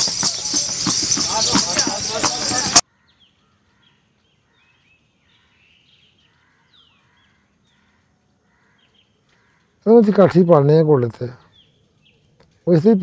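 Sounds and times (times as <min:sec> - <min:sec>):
birds chirping faintly: 0:00.0 - 0:13.0.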